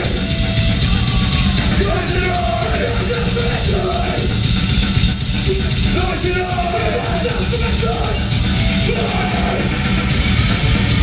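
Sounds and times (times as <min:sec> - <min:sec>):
shouted vocals: 0:00.0 - 0:04.6, 0:05.4 - 0:10.0
bass guitar: 0:00.0 - 0:11.0
drums: 0:00.0 - 0:11.0.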